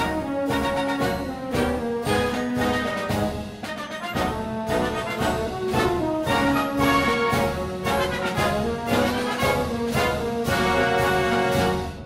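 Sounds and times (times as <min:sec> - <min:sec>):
orchestral music led by brass: 0:00.0 - 0:12.0.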